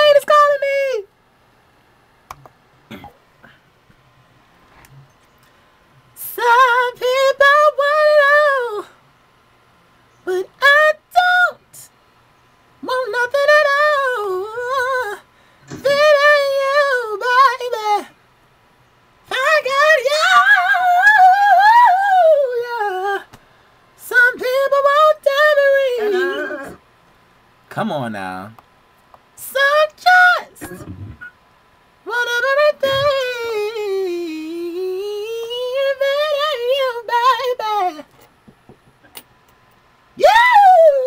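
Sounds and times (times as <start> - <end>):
man singing unaccompanied: 6.2 - 8.8, 24.0 - 26.8, 32.1 - 38.1
high voice vocalising without words: 24.5 - 26.8, 32.5 - 36.4, 40.2 - 41.0.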